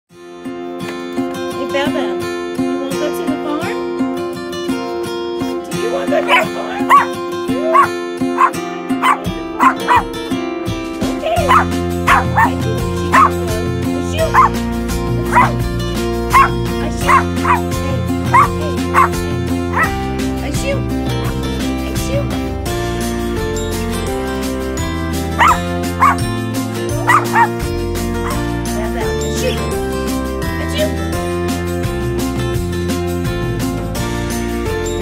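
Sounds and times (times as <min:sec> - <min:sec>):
background music with bass: 0:00.1 - 0:35.0
small dog yapping: 0:06.3 - 0:07.1, 0:07.7 - 0:10.1, 0:11.4 - 0:12.5, 0:15.3 - 0:15.5, 0:16.3 - 0:16.5, 0:17.1 - 0:17.6, 0:18.4 - 0:19.1, 0:25.4 - 0:26.2, 0:27.1 - 0:27.5.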